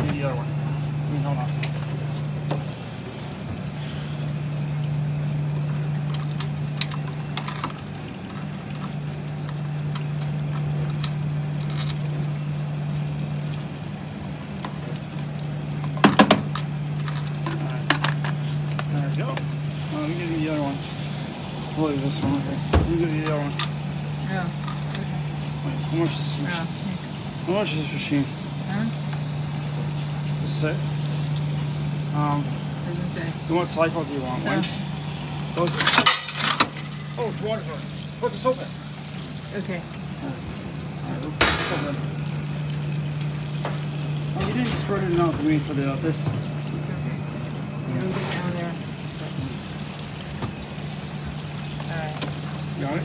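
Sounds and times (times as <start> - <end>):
low electrical hum: 0.0 - 53.0.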